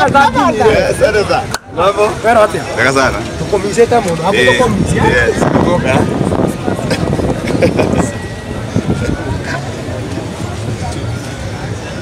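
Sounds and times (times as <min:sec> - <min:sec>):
voices nearby: 0:00.0 - 0:12.0.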